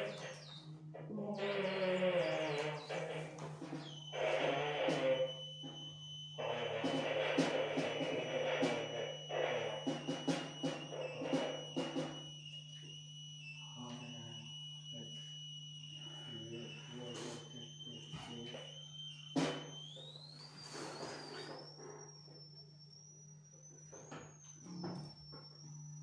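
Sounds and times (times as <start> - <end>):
thin high whine: 0.0 - 26.0
grainy noise blocks: 1.4 - 23.8.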